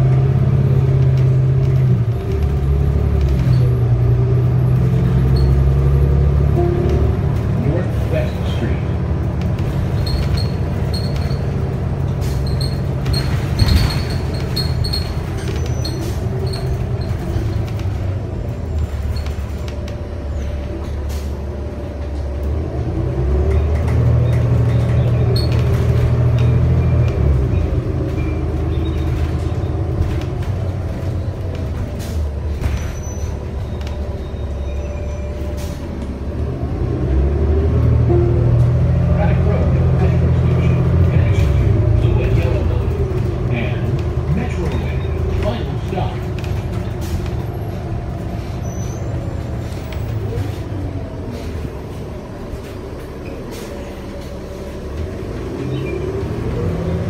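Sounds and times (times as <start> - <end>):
bus engine drone: 0.0 - 57.0
road noise: 0.0 - 57.0.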